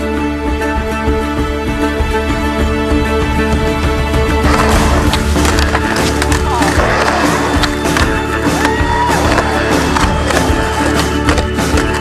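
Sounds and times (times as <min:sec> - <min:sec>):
skateboard wheels rolling on concrete: 0:04.3 - 0:12.0
skateboard clacks: 0:04.5 - 0:12.0.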